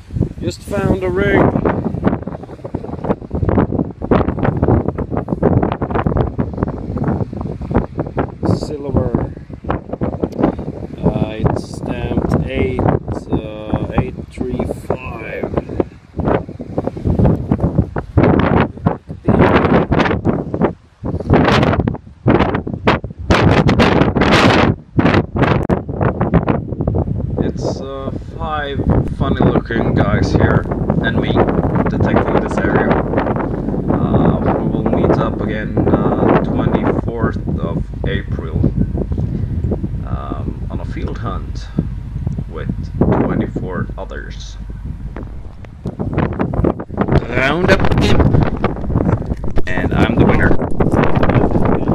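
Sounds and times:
gusty wind buffeting microphone: 0.0s - 51.9s.

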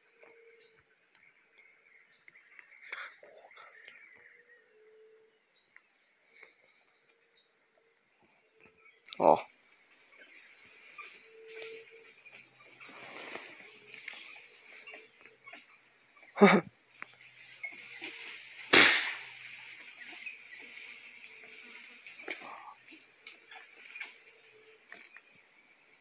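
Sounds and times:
insects chirring: 0.0s - 26.0s
man's short exclamation: 16.4s - 16.7s.

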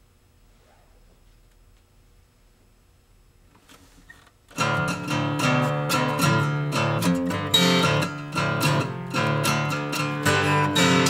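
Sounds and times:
strummed guitar chords: 4.5s - 11.0s.

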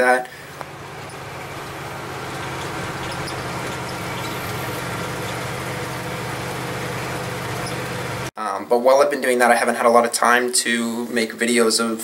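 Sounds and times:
truck engine running: 0.3s - 8.3s.

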